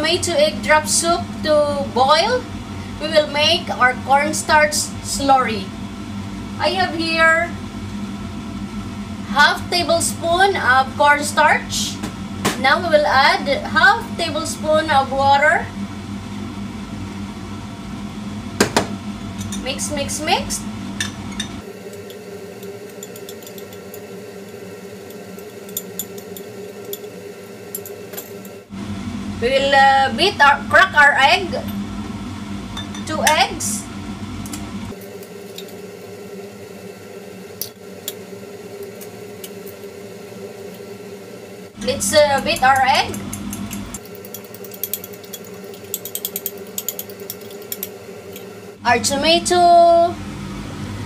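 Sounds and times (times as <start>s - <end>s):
steady low hum: 0.0s - 51.0s
stirring slurry: 21.9s - 28.0s, 42.6s - 48.5s
metal spoon clinking glass bowl: 22.6s - 27.1s, 42.5s - 48.5s.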